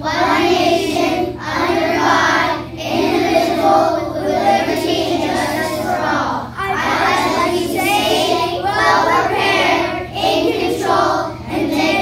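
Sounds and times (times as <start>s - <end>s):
children singing in unison: 0.0s - 12.0s.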